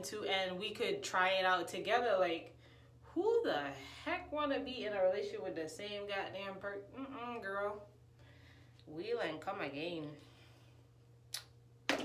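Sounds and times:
woman speaking: 0.0 - 2.5, 3.1 - 7.9, 8.9 - 10.3
steady low hum: 0.0 - 12.0.

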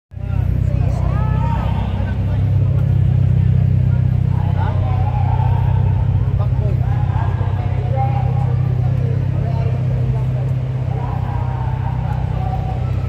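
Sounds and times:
car engine idling: 0.1 - 13.0
voices talking: 0.1 - 13.0.

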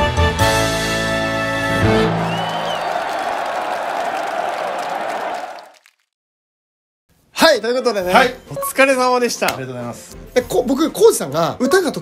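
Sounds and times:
stage music: 0.2 - 5.6
audience applauding and cheering: 1.7 - 6.0.

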